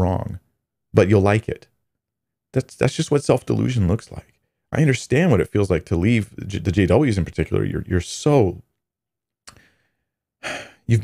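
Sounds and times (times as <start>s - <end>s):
mouth click: 9.4s - 9.7s
man breathing in: 9.5s - 10.9s.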